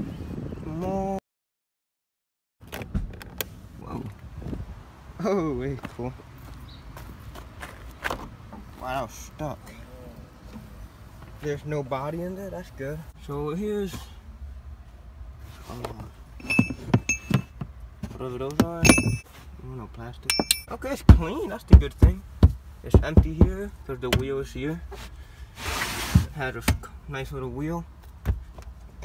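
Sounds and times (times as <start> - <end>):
metal tools being handled: 16.4 - 17.5, 18.8 - 19.2, 20.3 - 20.7
sharp metallic clinks: 16.4 - 17.6, 18.8 - 19.2, 20.3 - 20.8.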